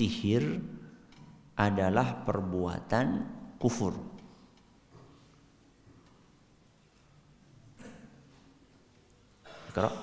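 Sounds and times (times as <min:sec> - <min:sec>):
man speaking: 0:00.0 - 0:00.8, 0:01.6 - 0:04.2, 0:09.7 - 0:10.0.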